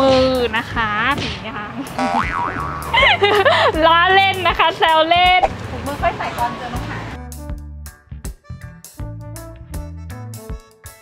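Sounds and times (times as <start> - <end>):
background music: 0.0 - 11.0
cartoon boing sound effect: 2.0 - 3.0
woman laughing: 2.9 - 4.8.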